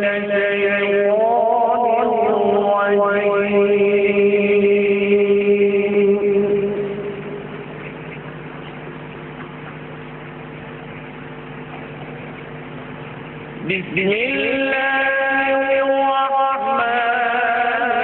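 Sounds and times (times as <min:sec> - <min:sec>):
man reciting melodically: 0:00.0 - 0:07.1, 0:13.6 - 0:18.0.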